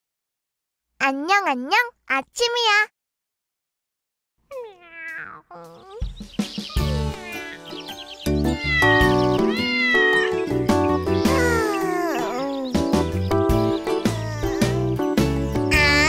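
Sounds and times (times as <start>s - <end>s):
cartoon kitten meowing: 4.5s - 6.1s, 8.5s - 10.5s, 11.1s - 12.8s, 13.8s - 15.0s, 15.7s - 16.0s
children's song instrumental: 4.5s - 16.0s.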